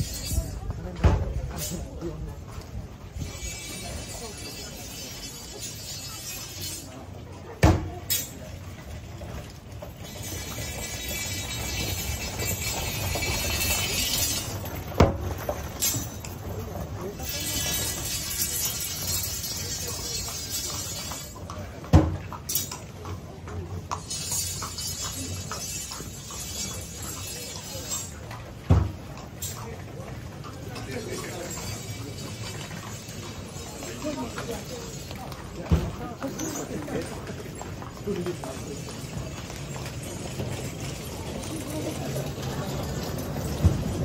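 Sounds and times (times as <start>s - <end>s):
onlookers' voices: 0.0s - 44.0s
street bustle: 0.0s - 44.0s.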